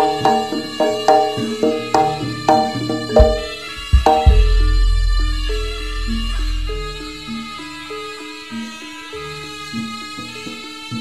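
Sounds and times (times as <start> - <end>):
melodic line of clear notes: 1.7 - 7.2
deep low sound: 3.2 - 7.4.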